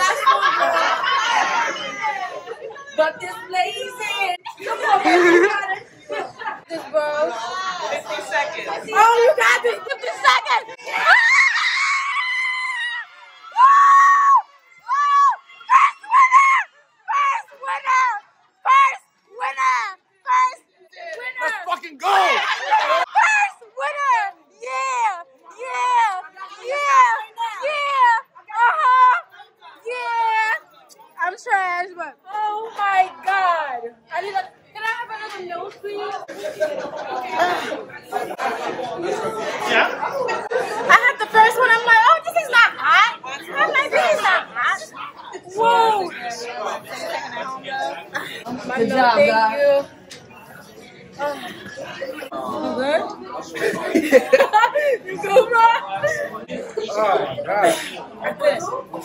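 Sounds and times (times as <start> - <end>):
people talking over one another: 0.0 - 59.0.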